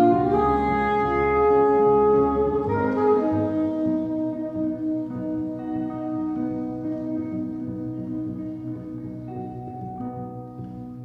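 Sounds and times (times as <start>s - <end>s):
saxophone long notes: 0.0s - 10.5s
guitar: 0.0s - 11.0s
plucked double bass line: 0.0s - 11.0s.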